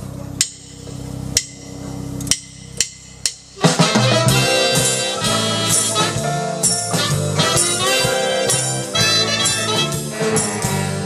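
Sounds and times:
big band with brass: 0:03.2 - 0:11.0.

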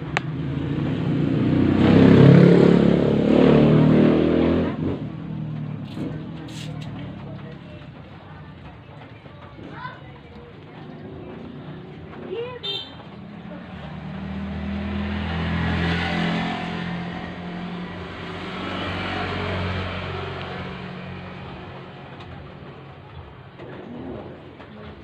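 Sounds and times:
vehicle engine passing by: 0:00.0 - 0:08.4, 0:10.7 - 0:25.0.

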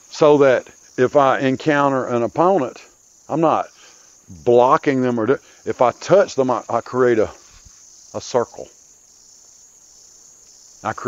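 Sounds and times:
man speaking: 0:00.0 - 0:07.5, 0:08.2 - 0:08.7
insects chirring: 0:00.0 - 0:11.0.

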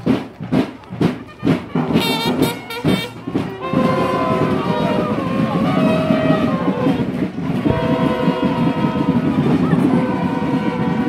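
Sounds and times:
busy low accompaniment: 0:00.0 - 0:11.0
brass holding long notes: 0:01.7 - 0:11.0.

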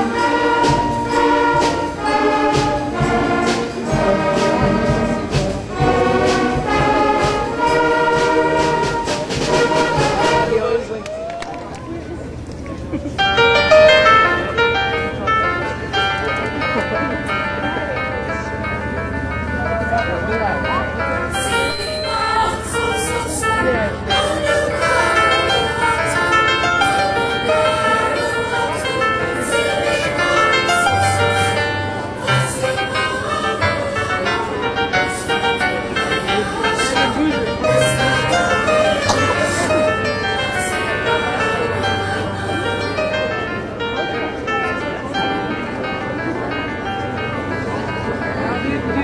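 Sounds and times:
children's choir singing: 0:00.0 - 0:10.5, 0:21.4 - 0:45.9
instrumental held chords: 0:00.0 - 0:11.0, 0:12.3 - 0:49.0.

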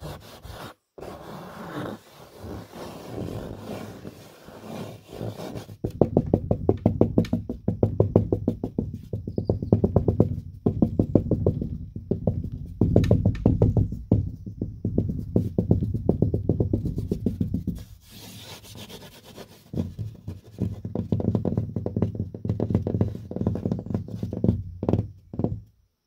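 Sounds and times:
fingertips tapping on drywall: 0:05.4 - 0:25.7.

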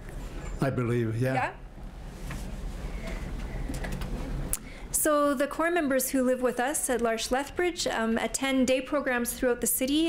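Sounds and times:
shuffling and handling noise: 0:01.9 - 0:04.4.

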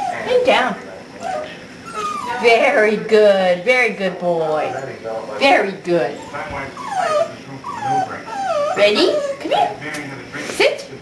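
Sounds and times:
puppy whimpering: 0:00.0 - 0:02.9, 0:04.5 - 0:09.8.

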